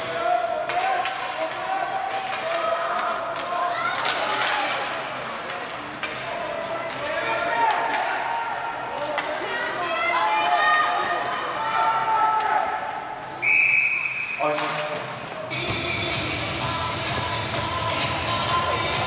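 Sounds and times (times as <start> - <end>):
hockey sticks and puck clicking: 0.5 - 12.6
referee whistle blast: 13.4 - 14.6.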